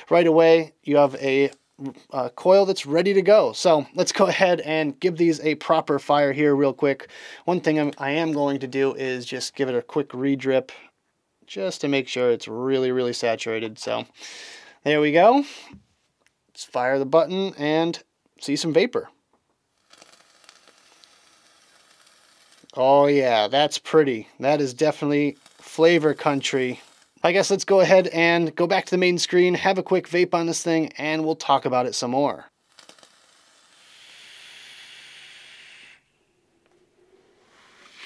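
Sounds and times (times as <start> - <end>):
faint sizzle of vaporizer coils: 19.7 - 22.8, 24.8 - 27.4, 32.5 - 36.1
vape draw hiss: 19.8 - 22.8, 25.2 - 27.2, 32.6 - 36.1, 37.3 - 38.0
soft exhale: 36.8 - 38.0.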